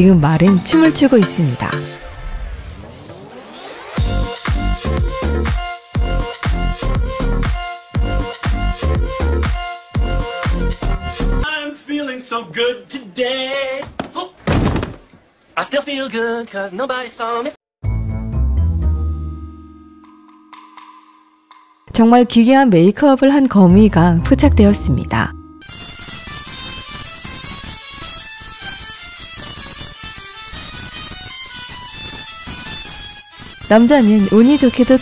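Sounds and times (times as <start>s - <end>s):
horse landing heavy thud: 14.4s - 15.1s
tesla coil spark arc buzzing: 25.8s - 35.0s.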